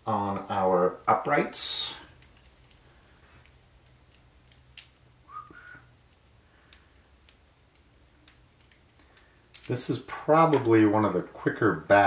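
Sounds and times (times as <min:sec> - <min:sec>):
small plastic parts clicking: 0:03.4 - 0:05.0, 0:06.1 - 0:09.7
rising whistle-like squeak: 0:05.3 - 0:05.8.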